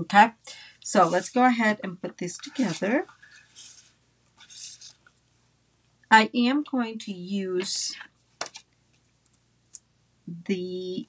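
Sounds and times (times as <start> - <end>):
paper rustling and sliding: 1.0 - 1.4, 2.4 - 5.1.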